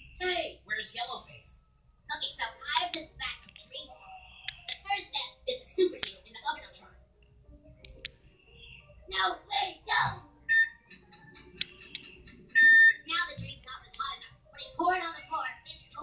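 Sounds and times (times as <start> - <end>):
background music from tv: 0.0 - 16.0
sharp clicks: 2.7 - 3.7, 4.4 - 4.9, 7.2 - 8.4, 10.8 - 12.7.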